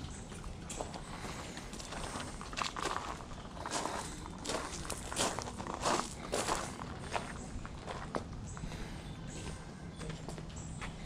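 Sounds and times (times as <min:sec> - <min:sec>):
footsteps on gravel and brick: 0:00.1 - 0:11.0.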